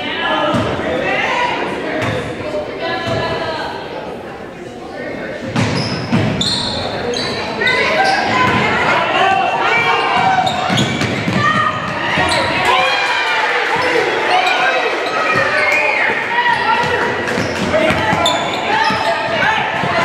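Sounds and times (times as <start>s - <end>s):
sneakers squeaking: 4.8s - 12.9s, 13.7s - 20.0s
people calling out: 5.8s - 20.0s.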